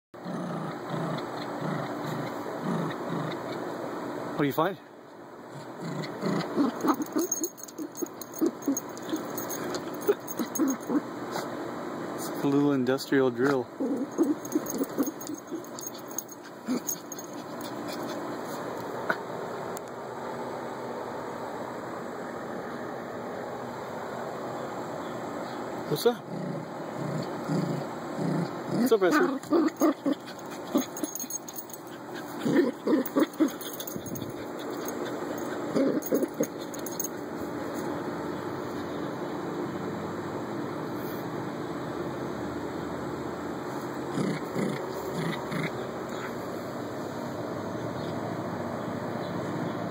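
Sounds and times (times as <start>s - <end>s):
dog paws scratching dirt: 29.1s - 37.0s.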